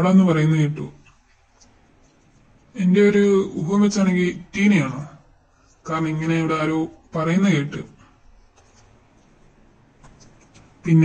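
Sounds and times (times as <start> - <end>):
soft rustles: 1.0 - 2.8, 8.2 - 10.9.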